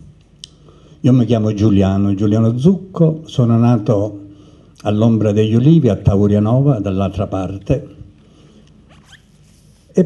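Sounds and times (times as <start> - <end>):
man speaking: 1.0 - 4.2, 4.8 - 8.1
short rising squeak: 8.9 - 9.6.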